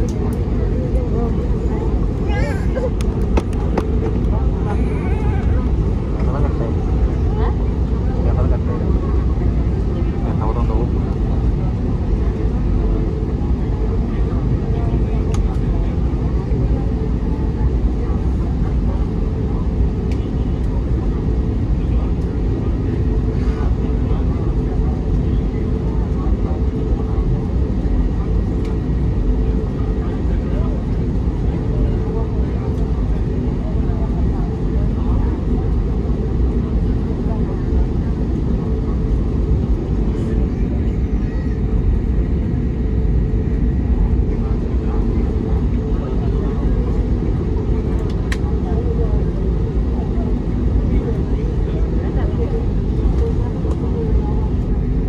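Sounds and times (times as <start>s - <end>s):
jet engines rumbling at taxi power: 0.0s - 55.0s.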